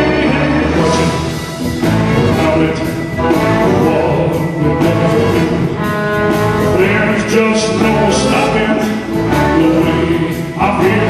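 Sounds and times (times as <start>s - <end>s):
live blues band with horns: 0.0s - 11.0s
man singing: 0.0s - 11.0s.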